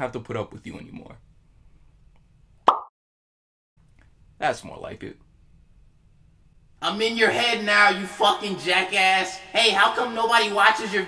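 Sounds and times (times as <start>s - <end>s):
cartoon pop sound effect: 2.6s - 2.9s.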